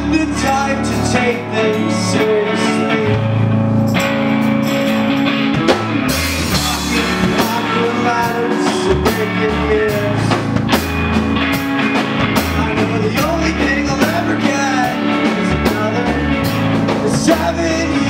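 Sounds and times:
indie rock band playing live: 0:00.0 - 0:18.0.

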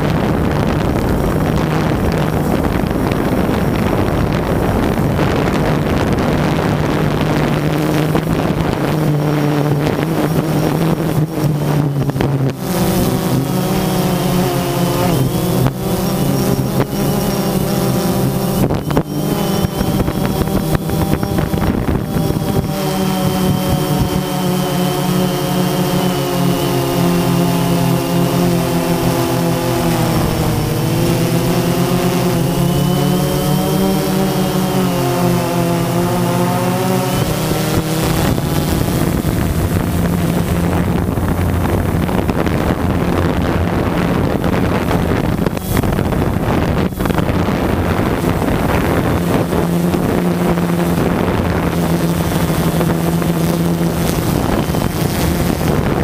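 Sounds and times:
drone motors whining: 0:00.0 - 0:56.0
wind on microphone: 0:00.0 - 0:56.0.

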